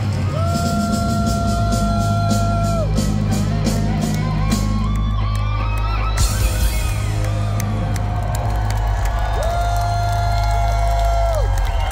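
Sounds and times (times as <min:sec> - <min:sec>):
live rock band playing: 0:00.0 - 0:11.9.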